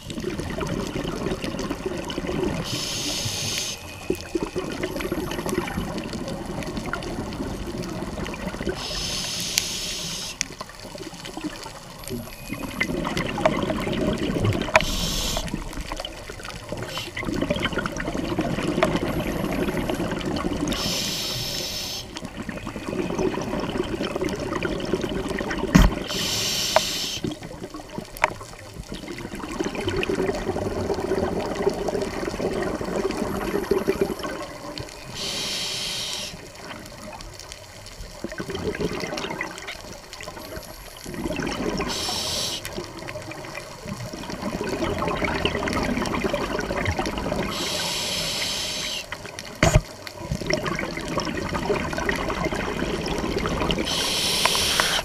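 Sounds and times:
exhaled bubbles burbling: 0.0 - 9.2, 10.2 - 35.4, 36.2 - 55.0
diver breathing through regulator: 2.6 - 3.8, 8.8 - 10.4, 14.8 - 15.6, 20.7 - 22.1, 26.0 - 27.3, 35.1 - 36.4, 41.8 - 42.7, 47.5 - 49.1, 53.8 - 55.0.

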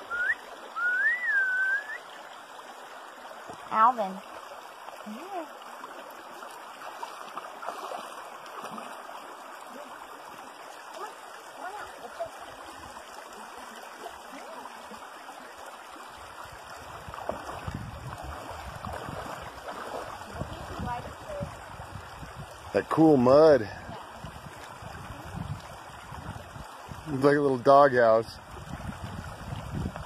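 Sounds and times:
creek water over gravel: 0.0 - 30.0.

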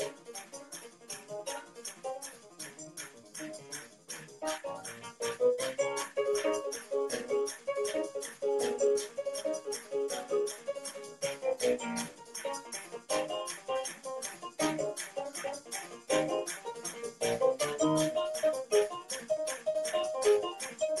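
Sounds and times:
keyboard runs and chords: 0.0 - 21.0.

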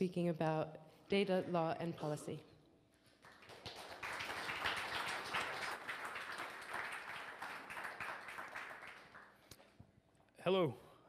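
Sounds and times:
audience applauding: 3.2 - 9.5.

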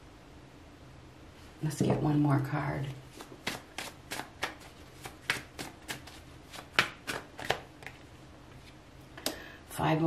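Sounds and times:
cards being shuffled: 3.1 - 8.8.

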